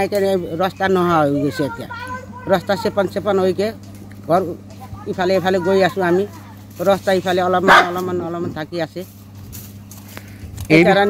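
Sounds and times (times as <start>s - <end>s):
dog barking: 7.6s - 8.1s.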